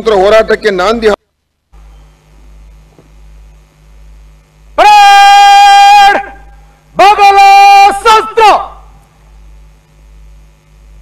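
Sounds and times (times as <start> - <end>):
low steady hum: 0.0 - 11.0
long shouted drill command: 4.8 - 6.4, 7.0 - 8.8.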